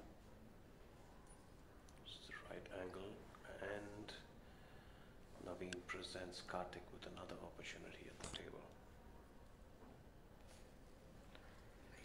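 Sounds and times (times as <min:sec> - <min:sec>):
whispered voices: 0:01.9 - 0:04.4, 0:05.3 - 0:12.0.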